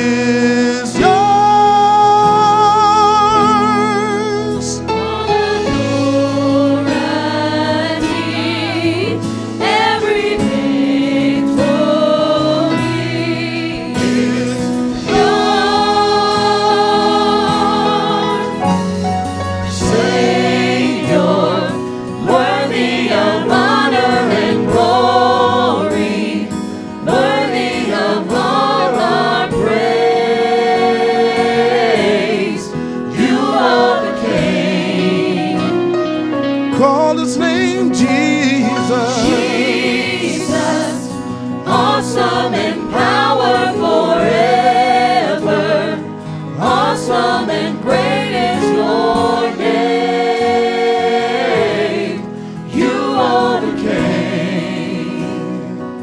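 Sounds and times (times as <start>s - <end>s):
gospel choir singing: 0.0s - 56.0s.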